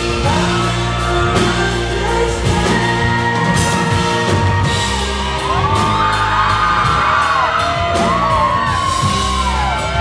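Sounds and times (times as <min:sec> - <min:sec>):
pop-rock band playing: 0:00.0 - 0:10.0
sliding lead melody: 0:00.0 - 0:10.0.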